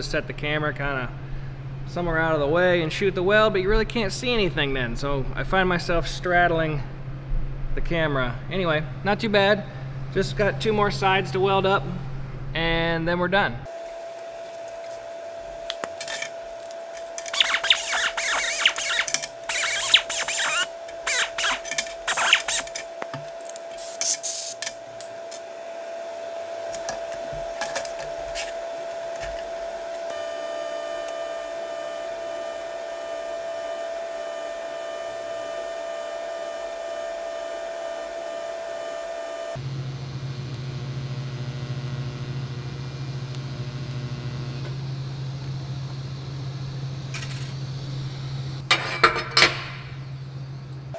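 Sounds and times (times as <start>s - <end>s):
welding arc buzzing: 13.7s - 50.9s.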